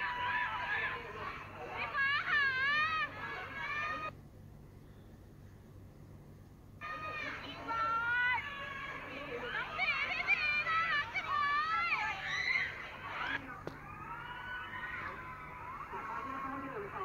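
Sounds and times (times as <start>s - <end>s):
high-pitched excited voices: 0.0s - 4.1s, 6.8s - 17.0s
faint low hum: 0.0s - 17.0s.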